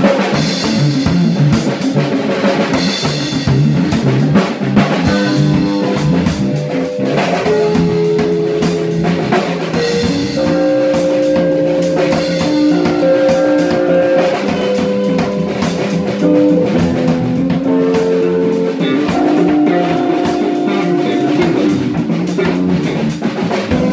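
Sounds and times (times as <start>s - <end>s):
drum kit fills: 0.0s - 23.9s
electric bass: 0.0s - 23.9s
electric guitar notes ringing: 0.0s - 23.9s.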